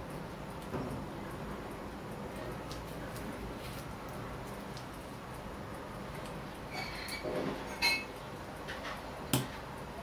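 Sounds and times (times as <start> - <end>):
metallic squeak: 6.7 - 8.1.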